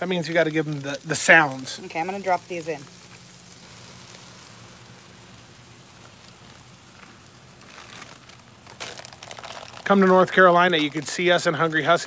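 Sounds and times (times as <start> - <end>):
food sizzling on griddle: 0.0 - 12.0
sharp crackles and clicks: 0.0 - 12.0.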